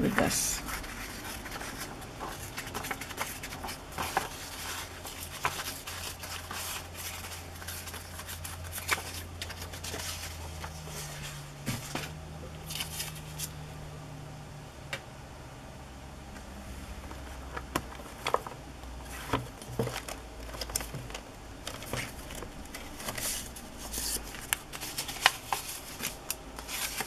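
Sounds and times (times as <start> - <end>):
paper tearing and rustling: 0.5 - 13.6, 19.0 - 27.0.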